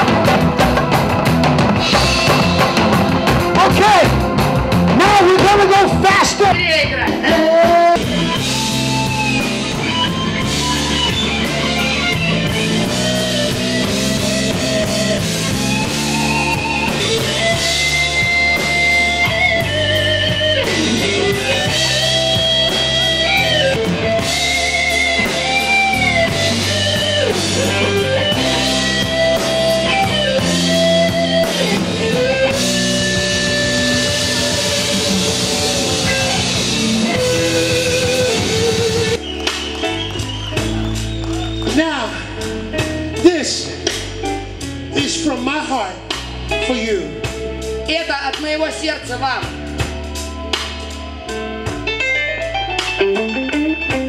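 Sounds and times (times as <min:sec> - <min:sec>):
bass guitar: 0:00.0 - 0:54.0
drum kit: 0:00.0 - 0:54.0
electric guitar lead: 0:00.0 - 0:54.0.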